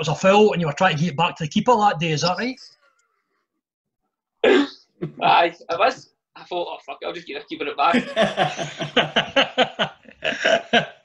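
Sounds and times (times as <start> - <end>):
man bursting into laughter: 7.9 - 11.0.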